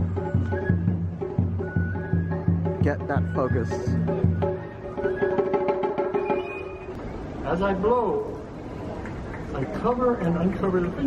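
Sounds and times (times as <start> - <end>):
bamboo flute held notes: 0.0 - 7.2.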